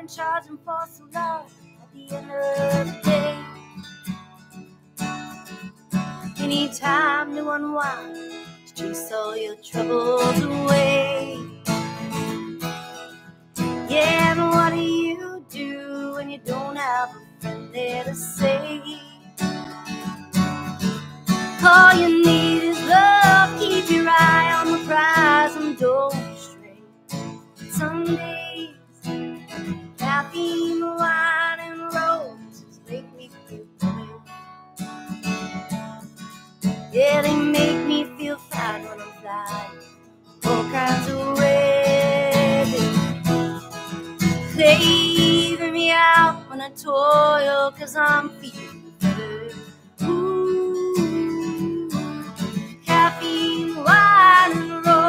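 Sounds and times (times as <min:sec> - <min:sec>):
woman singing: 0:00.0 - 0:03.9, 0:06.0 - 0:12.5, 0:13.6 - 0:20.1, 0:20.8 - 0:34.5, 0:36.6 - 0:55.0
strummed acoustic guitar: 0:00.0 - 0:55.0.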